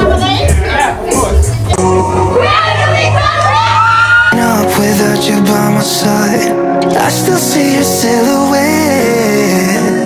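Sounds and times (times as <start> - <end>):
backing track with bass: 0.0 - 10.0.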